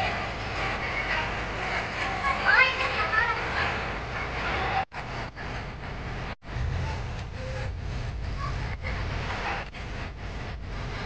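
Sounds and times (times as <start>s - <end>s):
children chattering: 0.0s - 4.9s.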